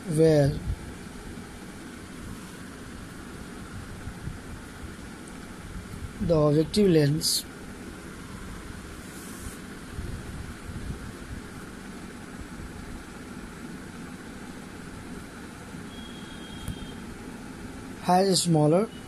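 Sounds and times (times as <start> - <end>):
faint hiss: 0.0 - 19.0
low background hum: 0.0 - 19.0.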